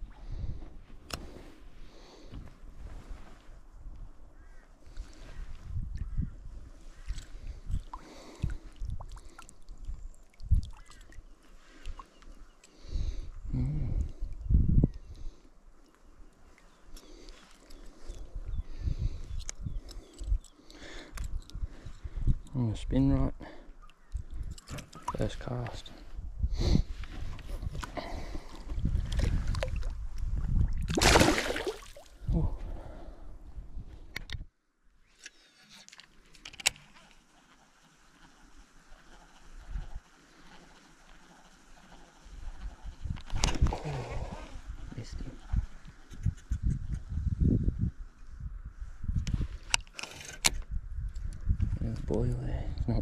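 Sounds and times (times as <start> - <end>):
water splashing: 30.8 - 32.2
person wading in water: 30.8 - 32.3.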